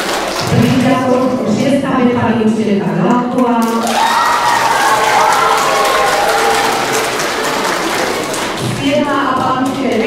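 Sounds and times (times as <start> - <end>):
crowd applauding: 0.0 - 1.2, 3.7 - 10.0.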